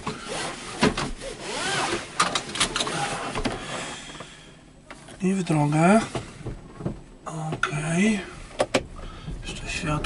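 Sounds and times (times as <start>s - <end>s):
seat belt webbing sliding: 0.0s - 3.8s
seat belt clicks and knocks: 1.8s - 3.6s, 8.6s - 8.9s.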